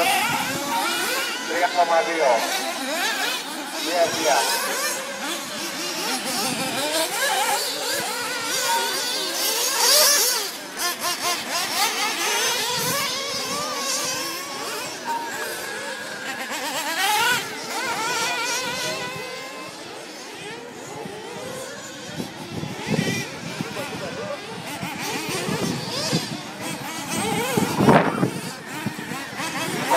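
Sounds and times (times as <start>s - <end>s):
small engines revving high: 0.0s - 29.9s.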